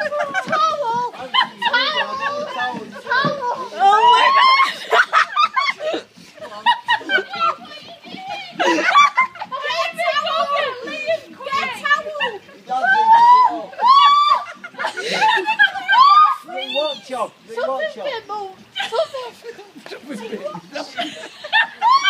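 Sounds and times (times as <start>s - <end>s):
laughter: 0.0s - 3.3s, 4.3s - 7.8s, 8.5s - 9.9s, 13.7s - 16.3s, 18.7s - 22.0s
people talking excitedly: 0.0s - 22.0s.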